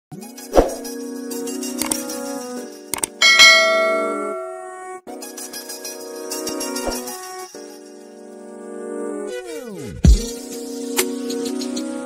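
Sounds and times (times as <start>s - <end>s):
background music sustained tones: 0.8s - 9.4s
bright bell chime: 3.2s - 4.7s.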